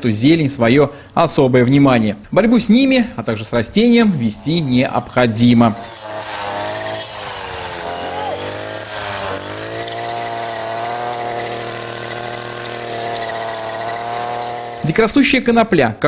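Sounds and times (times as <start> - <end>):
string trimmer engine running: 2.6 - 15.5.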